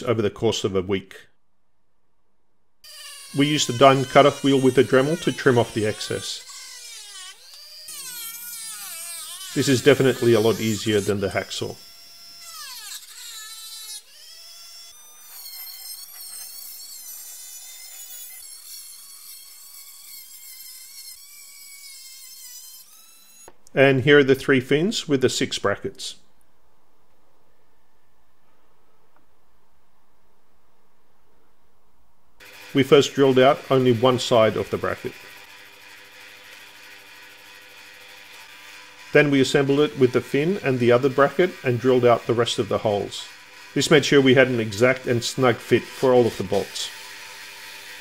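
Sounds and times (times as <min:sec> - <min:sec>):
drill bit drilling holes: 0:02.8 - 0:23.5, 0:32.4 - 0:48.0
rotary tool cutting wheel whine: 0:02.8 - 0:23.6, 0:32.4 - 0:48.0
drill press humming: 0:02.9 - 0:23.6, 0:32.4 - 0:48.0.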